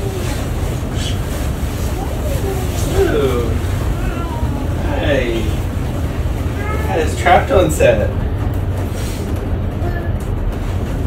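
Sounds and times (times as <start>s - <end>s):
hiss: 0.0s - 5.7s
steady low rumble: 0.0s - 11.0s.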